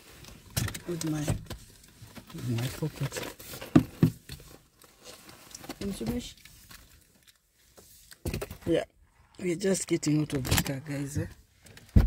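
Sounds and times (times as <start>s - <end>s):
rustling and handling noises: 0.0s - 12.0s.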